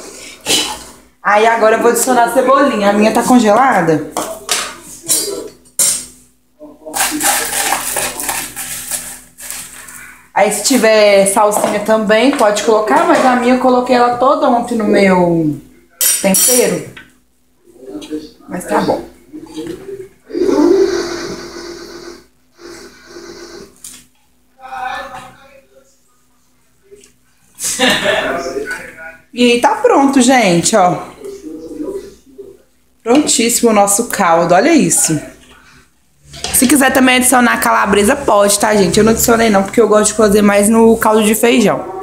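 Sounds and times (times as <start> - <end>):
spoon scraping metal pot: 7.0 - 10.0.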